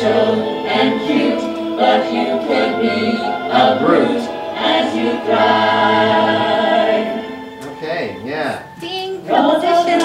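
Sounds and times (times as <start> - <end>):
women singing unaccompanied: 8.8 - 10.0.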